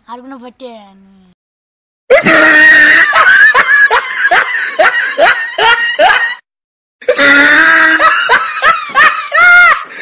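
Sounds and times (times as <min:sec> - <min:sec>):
high-pitched laughter: 0:02.1 - 0:06.4, 0:07.0 - 0:10.0.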